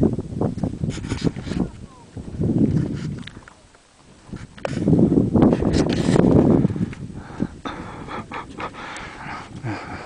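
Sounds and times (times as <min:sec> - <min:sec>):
heavy panting breaths: 0:06.6 - 0:10.0.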